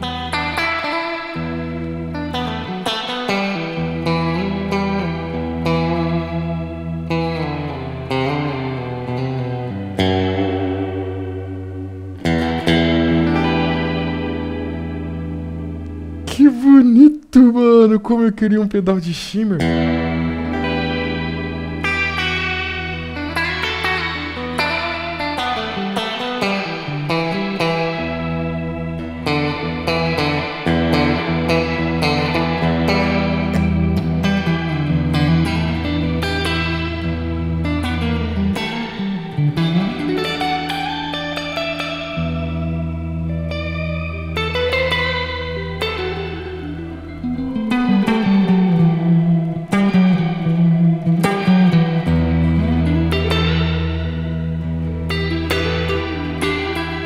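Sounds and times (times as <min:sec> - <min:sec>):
electric guitar with shimmering reverb: 0:00.0 - 0:57.0.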